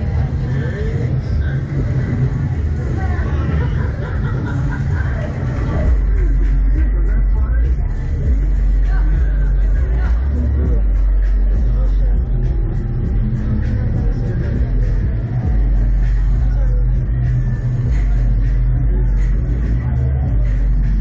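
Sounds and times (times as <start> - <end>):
faint voices: 0.0 - 21.0
heavy low rumble: 0.0 - 21.0.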